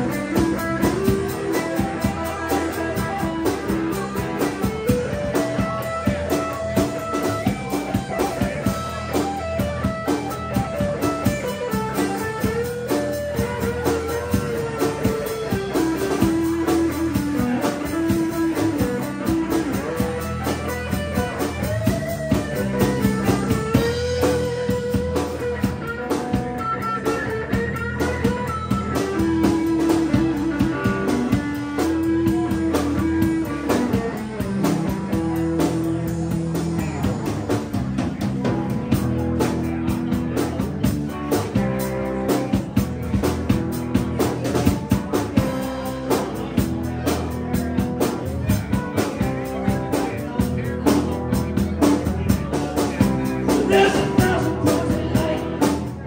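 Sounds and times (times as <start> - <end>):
lead electric guitar melody: 0.0 - 56.0
rock band playing: 0.0 - 56.0.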